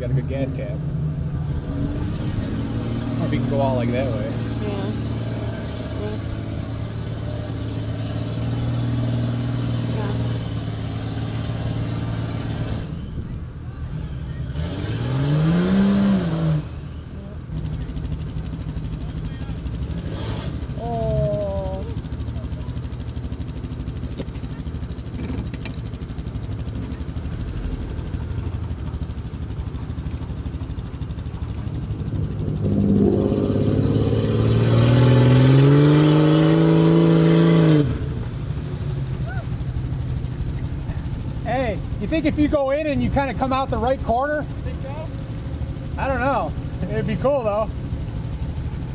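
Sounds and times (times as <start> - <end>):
engine revving loudly driving by: 0.0 - 23.4, 26.2 - 48.9
engine revving: 0.0 - 23.5, 30.3 - 48.9
off-road vehicle engines idling: 0.0 - 48.9.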